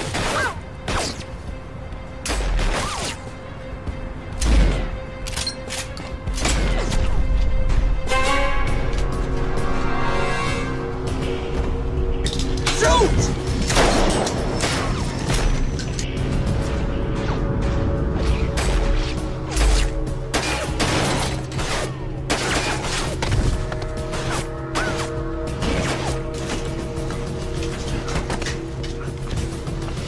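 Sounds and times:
dramatic action score: 0:00.0 - 0:30.0.

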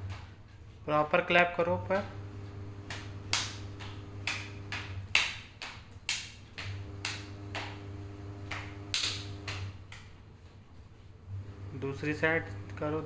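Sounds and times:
steady low hum: 0:01.6 - 0:05.2, 0:06.5 - 0:13.0
hand claps: 0:02.8 - 0:10.2.

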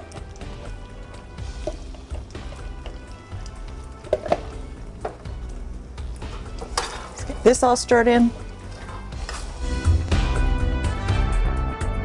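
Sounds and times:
thick sauce pouring: 0:00.0 - 0:07.3
spoon stirring in pot: 0:00.0 - 0:09.8
soft background music: 0:00.0 - 0:12.0.

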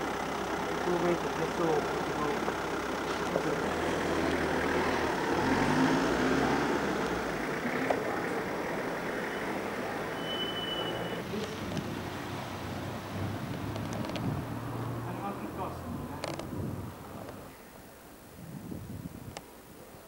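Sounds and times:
vehicle engine running: 0:00.0 - 0:10.2
traffic noise: 0:00.0 - 0:20.0
high thin tone: 0:09.3 - 0:11.3.

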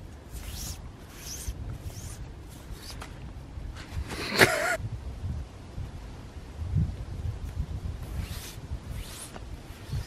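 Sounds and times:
zip being worked: 0:00.3 - 0:03.1, 0:08.0 - 0:10.0.

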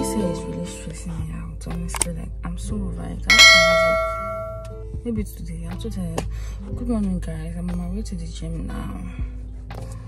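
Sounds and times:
background music: 0:00.0 - 0:10.0
bell chime ding: 0:03.3 - 0:04.8.

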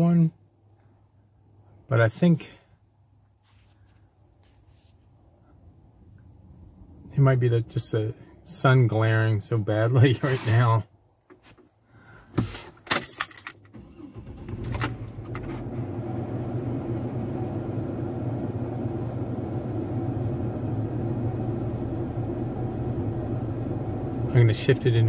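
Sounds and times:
keys jangling in ignition: 0:12.8 - 0:15.2
car engine starting and idling: 0:13.0 - 0:25.0.

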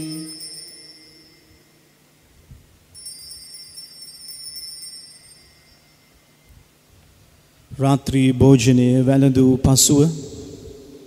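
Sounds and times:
altar bells ringing: 0:00.0 - 0:06.8.

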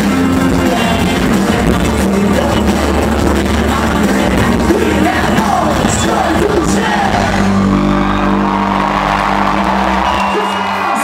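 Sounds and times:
loud live band music: 0:00.0 - 0:11.0
shouted vocals: 0:04.7 - 0:11.0.

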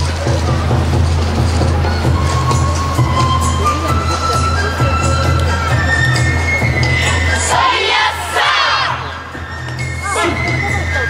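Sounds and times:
group shout of many voices: 0:07.4 - 0:09.1.

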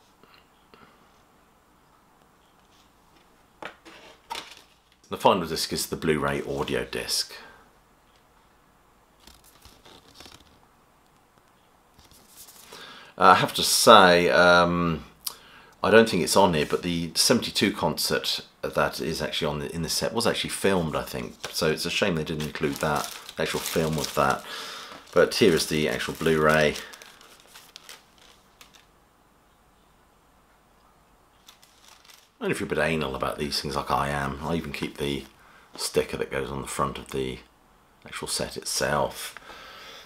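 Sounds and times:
card sleeve rustling: 0:09.2 - 0:10.6, 0:12.0 - 0:12.8, 0:21.1 - 0:28.9, 0:31.4 - 0:32.4.

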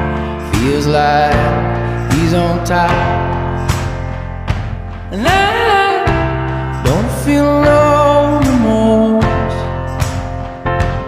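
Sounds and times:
steady bass backing: 0:00.0 - 0:11.0.

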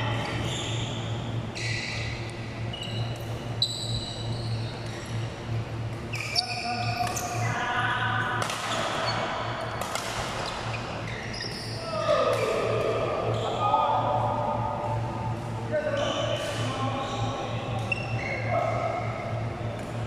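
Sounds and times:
steady low hum: 0:00.0 - 0:20.0
sneakers squeaking on court floor: 0:00.2 - 0:05.4, 0:06.0 - 0:07.5, 0:08.5 - 0:11.9, 0:15.9 - 0:18.5
rackets hitting shuttlecock: 0:08.3 - 0:10.6.

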